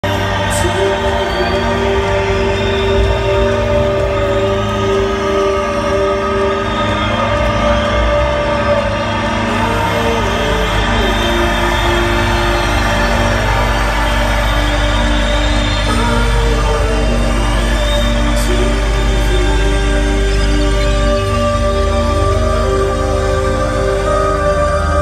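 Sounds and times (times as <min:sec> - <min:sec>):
atmospheric synthesizer chords: 0:00.0 - 0:25.0
steady low drone: 0:00.0 - 0:25.0.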